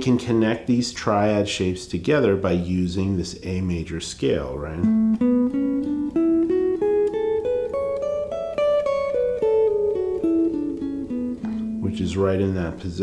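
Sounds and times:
electric guitar playing a scale: 4.8 - 13.0.

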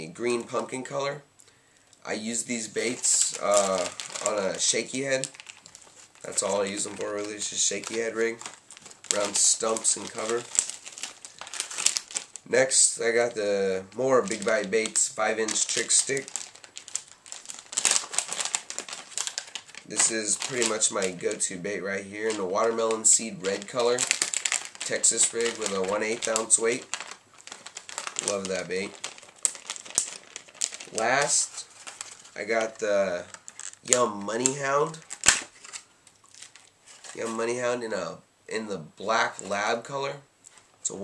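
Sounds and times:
plastic bag crinkling: 2.1 - 37.6
plastic packaging click: 33.3 - 37.2.

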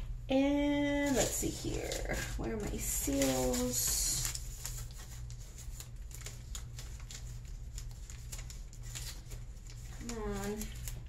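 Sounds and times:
steady low hum: 0.0 - 11.0
rustling of packing supplies: 0.9 - 11.0.

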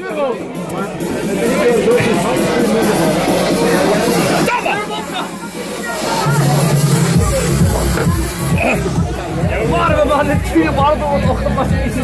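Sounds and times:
background music: 0.0 - 12.0
people talking in a bar: 0.0 - 12.0.

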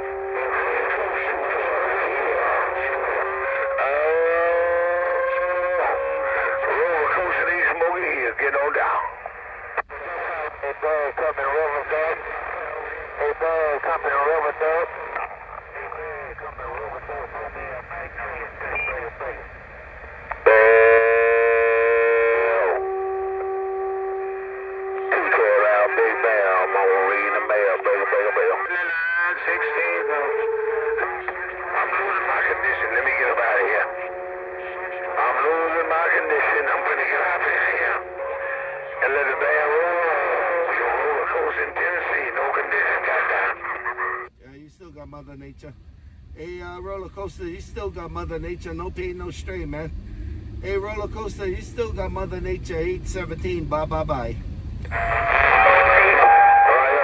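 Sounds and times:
voices through radio speaker: 0.0 - 23.5, 24.2 - 45.8, 46.4 - 50.0, 50.6 - 57.0
steady held tones: 14.9 - 57.0.

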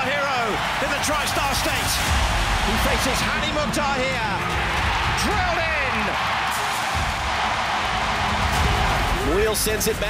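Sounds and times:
background music: 0.0 - 10.0
stadium crowd cheering: 0.0 - 10.0.

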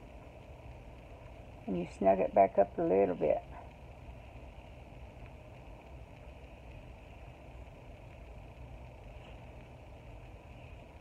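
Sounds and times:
faint low hum with hiss: 0.0 - 11.0.

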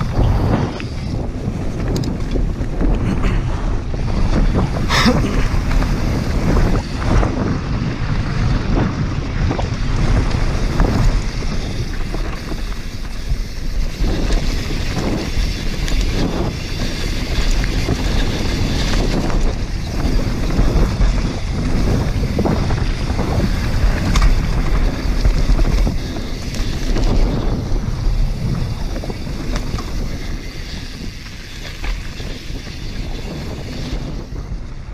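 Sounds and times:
bike rattles and knocks: 0.0 - 34.9
bike tyres rolling over dirt: 0.0 - 34.9
wind rumble on microphone: 0.0 - 34.9.

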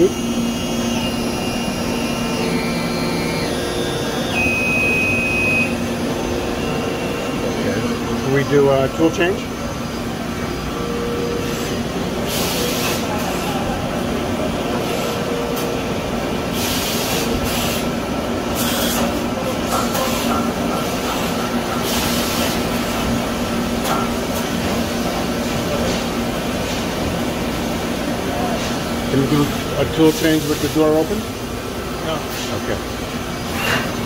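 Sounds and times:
machine whirring and humming: 0.0 - 34.0.

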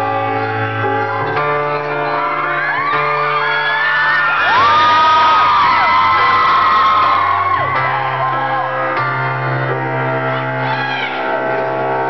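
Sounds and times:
crowd screaming and whooping: 0.6 - 12.0.

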